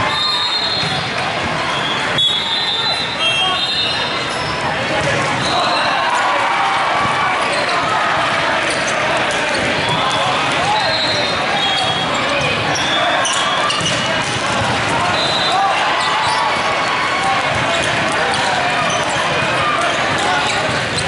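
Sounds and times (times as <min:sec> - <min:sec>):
many voices calling and talking: 0:00.0 - 0:21.0
balls bouncing: 0:07.0 - 0:12.7, 0:13.3 - 0:15.3, 0:16.2 - 0:21.0
shoes squeaking on court floor: 0:07.4 - 0:07.9, 0:08.6 - 0:14.4, 0:15.0 - 0:21.0.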